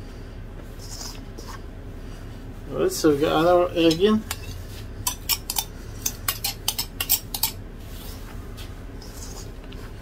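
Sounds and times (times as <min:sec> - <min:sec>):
utensil clinking against bowl: 0:03.8 - 0:07.6
faint rustling of hands in flour: 0:07.8 - 0:10.0.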